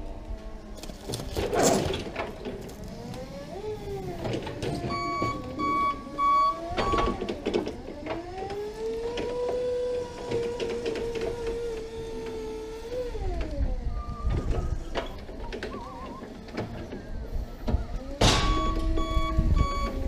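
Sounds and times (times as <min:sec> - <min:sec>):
forklift motor and hydraulics whine: 0:00.0 - 0:20.0
short beeps: 0:04.9 - 0:07.1, 0:18.4 - 0:20.0.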